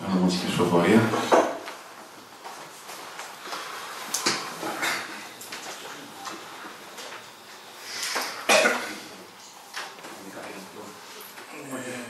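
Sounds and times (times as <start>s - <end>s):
person coughing: 8.4s - 9.1s.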